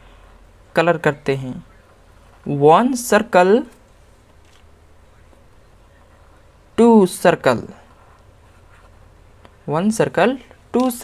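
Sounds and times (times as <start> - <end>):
person speaking: 0.6 - 3.9, 5.0 - 11.0.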